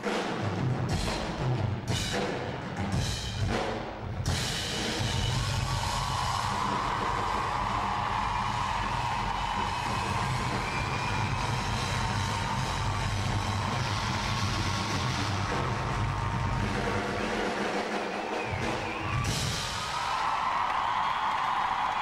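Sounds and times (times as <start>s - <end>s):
drum kits roaring: 0.0s - 22.0s.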